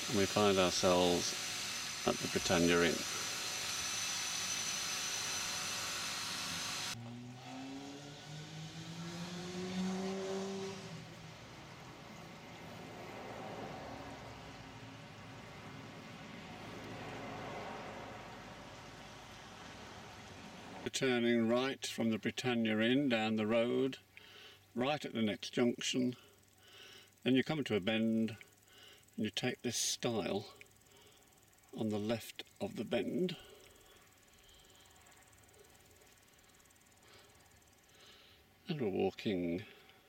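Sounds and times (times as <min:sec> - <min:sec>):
steady hiss: 0:00.0 - 0:07.0, 0:09.8 - 0:40.0
road and outdoor noise: 0:00.0 - 0:21.5
car engine speeding up: 0:06.9 - 0:20.8.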